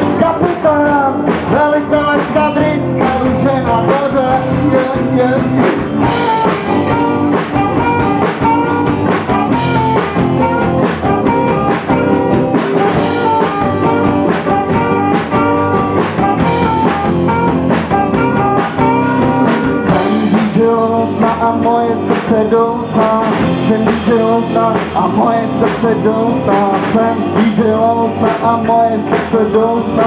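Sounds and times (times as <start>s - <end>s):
rock band playing: 0.0s - 30.0s
saxophone: 6.0s - 20.2s.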